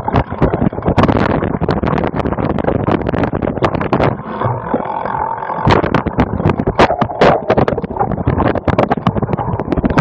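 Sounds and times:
bike rattling over bumpy dirt: 0.0s - 10.0s.

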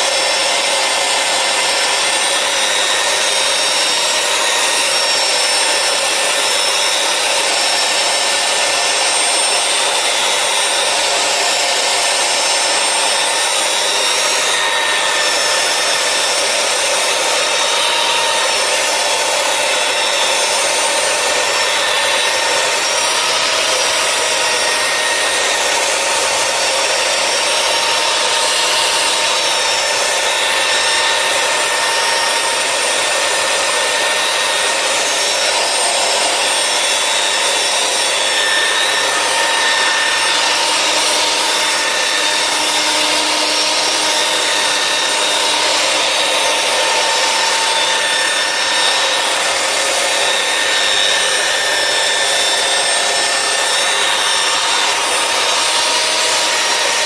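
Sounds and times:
electric polisher motor whine: 0.0s - 57.0s.

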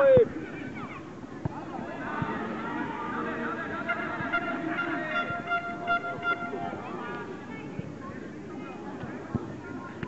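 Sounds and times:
spectators' voices: 0.0s - 10.0s
horn sounding: 3.8s - 6.8s.

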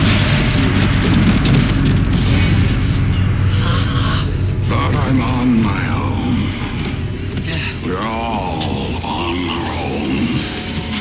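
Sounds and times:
drums hitting: 0.0s - 3.2s.

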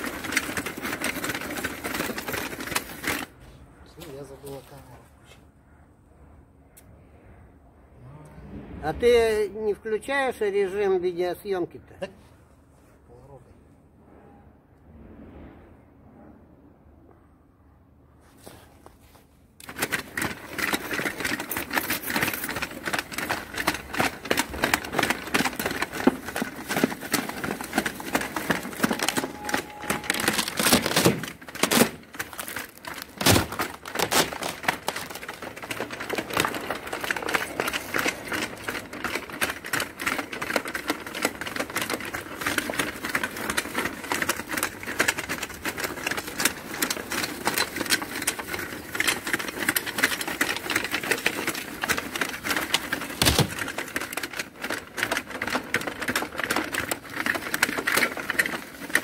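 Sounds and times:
robot tracks clattering: 19.6s - 59.0s.

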